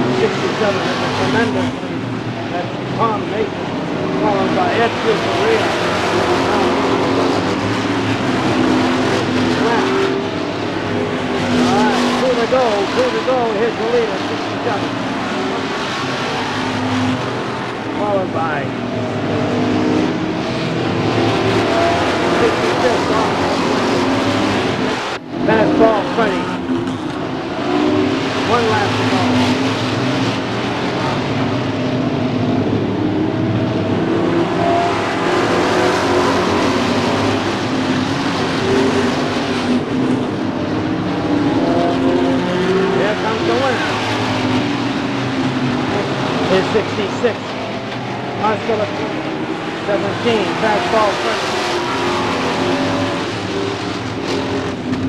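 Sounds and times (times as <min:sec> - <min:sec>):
race car engines passing: 0:00.0 - 0:55.0.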